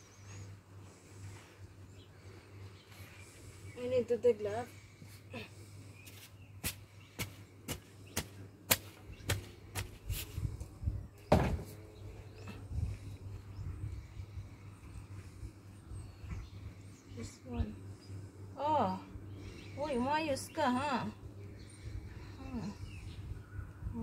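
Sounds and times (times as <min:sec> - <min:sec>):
soft scrapes in soil: 0:09.8 - 0:10.8
heavy thump: 0:11.3 - 0:11.8.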